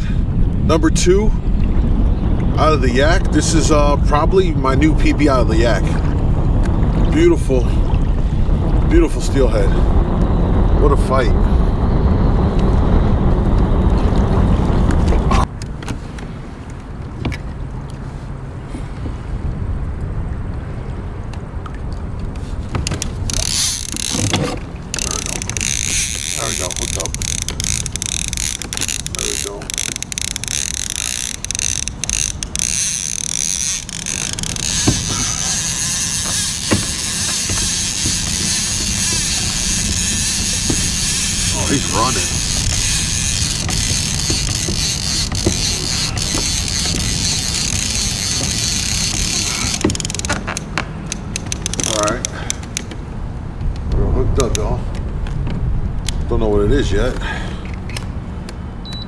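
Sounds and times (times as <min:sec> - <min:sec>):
fishing reel drag clicking and buzzing: 0:22.8 - 0:52.8.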